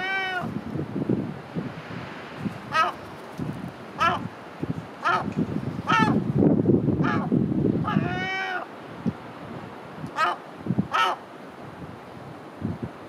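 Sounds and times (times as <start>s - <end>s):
gull calling: 2.7s - 3.0s, 4.0s - 4.3s, 5.0s - 6.2s, 7.0s - 7.3s, 7.9s - 8.7s, 10.2s - 11.2s.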